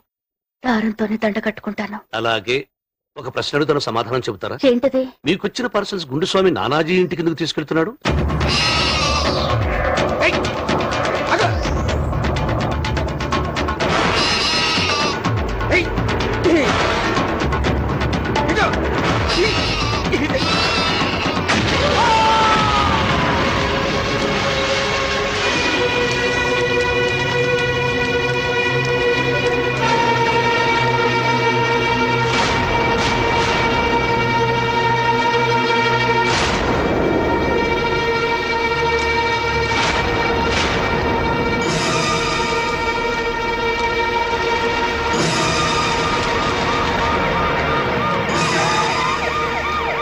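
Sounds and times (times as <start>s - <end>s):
emergency vehicle siren: 45.6s - 50.0s.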